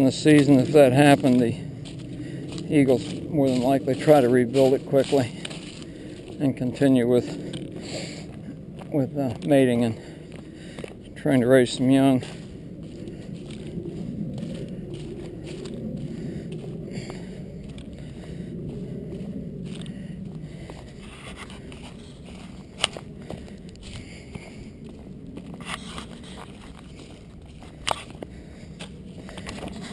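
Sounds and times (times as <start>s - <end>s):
footsteps on leaves and gravel: 0.0s - 29.9s.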